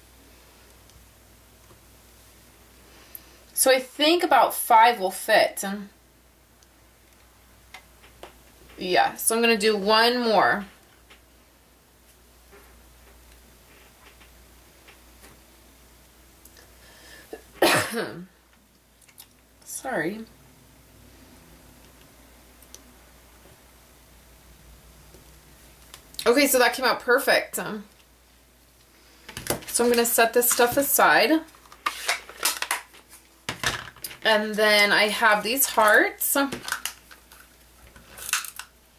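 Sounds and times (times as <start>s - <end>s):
woman clearing throat: 17.6s - 18.3s.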